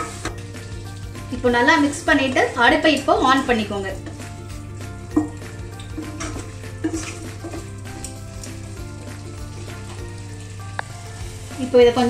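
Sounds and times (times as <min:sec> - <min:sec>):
gravy sizzling in a pan: 0:00.0 - 0:12.0
spatula scraping a pan: 0:06.0 - 0:10.0.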